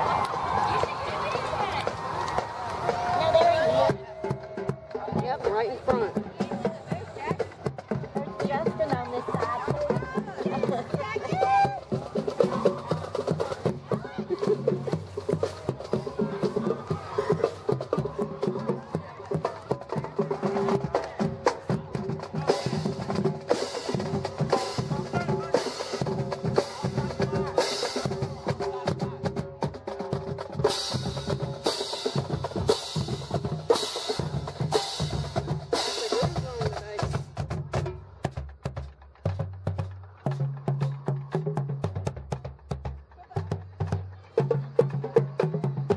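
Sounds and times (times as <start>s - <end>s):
marching drumline playing: 0.0s - 45.9s.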